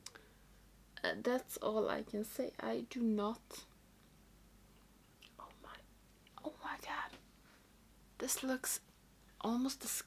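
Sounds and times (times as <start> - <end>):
woman whispering: 5.3 - 7.2.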